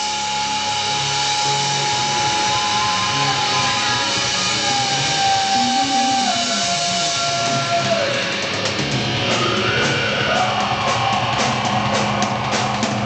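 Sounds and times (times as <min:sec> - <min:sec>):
bass line: 0:00.0 - 0:13.0
distorted electric guitar: 0:00.0 - 0:13.0
live rock band playing: 0:00.0 - 0:13.0.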